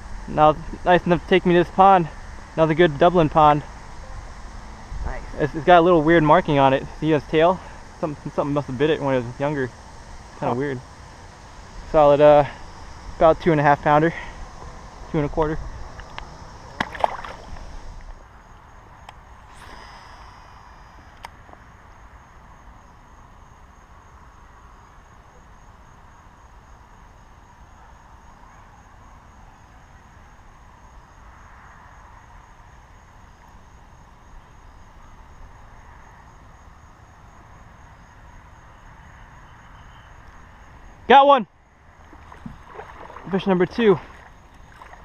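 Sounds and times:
faint outdoor background hiss: 0.0s - 45.0s
fish splashing into water: 16.7s - 17.6s, 42.1s - 43.4s, 44.0s - 45.0s.

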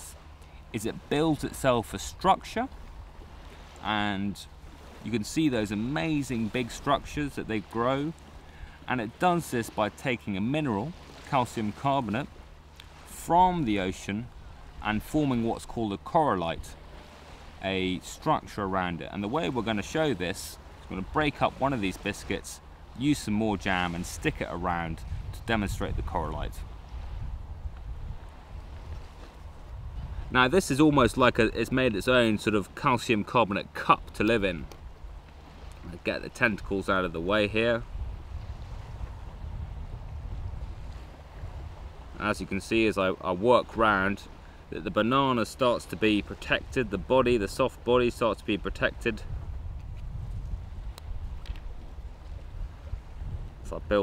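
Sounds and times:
wind buffeting microphone: 19.3s - 32.5s, 34.0s - 42.9s, 48.5s - 54.0s.

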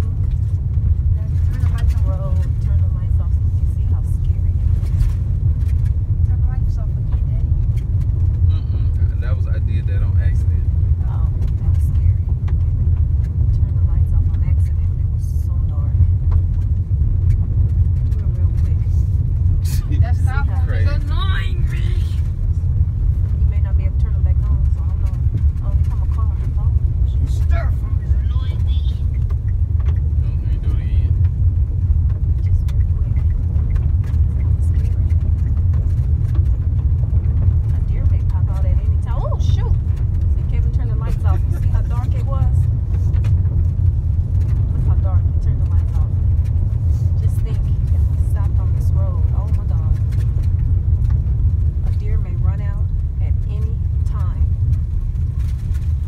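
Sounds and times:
vehicle driving rumble: 0.0s - 56.0s.

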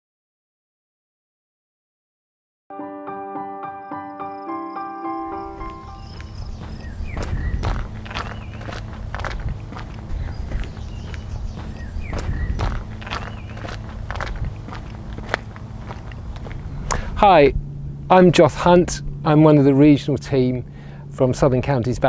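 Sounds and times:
footsteps on wooden footbridge: 5.5s - 17.1s.

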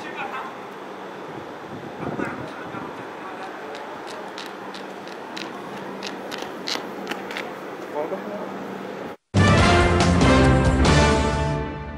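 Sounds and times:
faint voices: 1.9s - 5.5s
sharp high clicks: 3.7s - 7.6s.

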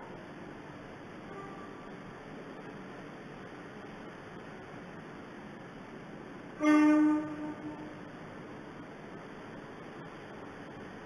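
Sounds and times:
train horn: 1.2s - 1.9s, 6.6s - 8.1s.

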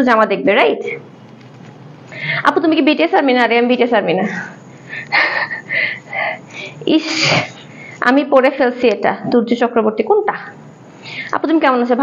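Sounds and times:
woman sneezing: 6.9s - 7.6s.

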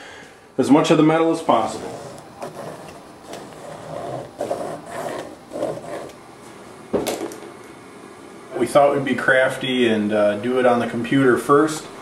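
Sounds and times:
marker scraping on plastic film: 1.7s - 6.2s.

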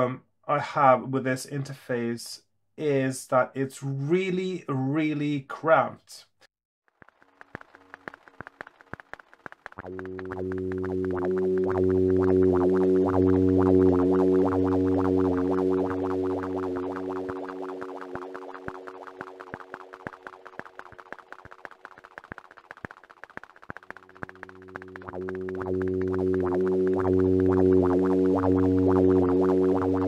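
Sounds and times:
clicky synth pulses: 7.0s - 30.0s
synthesizer low drone: 9.8s - 21.7s, 23.8s - 30.0s.

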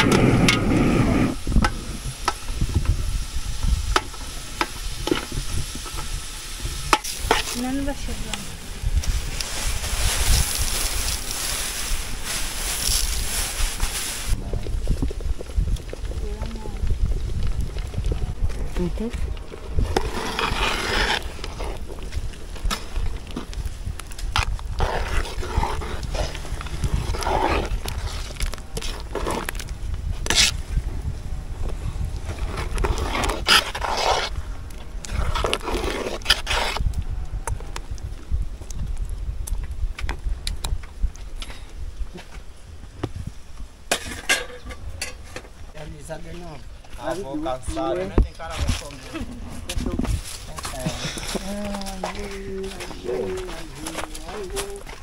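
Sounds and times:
wind rumbling on microphone: 0.0s - 55.0s.

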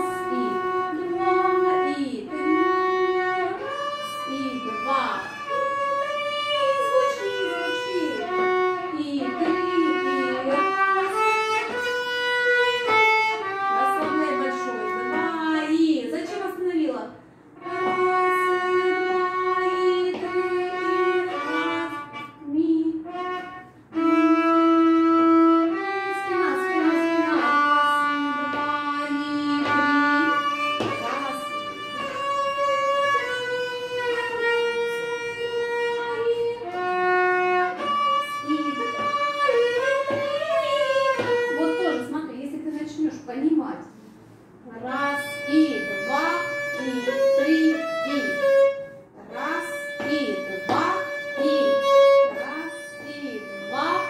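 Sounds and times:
violin playing sustained notes: 0.0s - 15.7s, 17.6s - 42.4s, 44.9s - 54.0s.

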